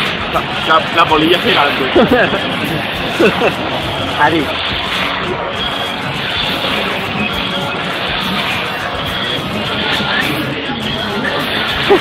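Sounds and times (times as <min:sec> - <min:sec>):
crowd hubbub: 0:00.0 - 0:12.0
fairground music: 0:00.0 - 0:12.0.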